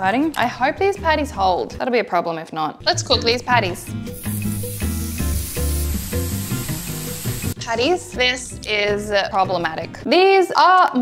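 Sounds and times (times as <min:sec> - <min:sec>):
background music: 0:00.0 - 0:11.0
patties sizzling in frying pan: 0:04.1 - 0:07.6.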